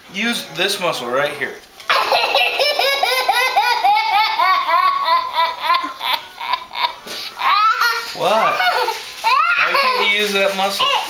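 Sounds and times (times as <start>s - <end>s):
small boy laughing: 1.9s - 11.0s.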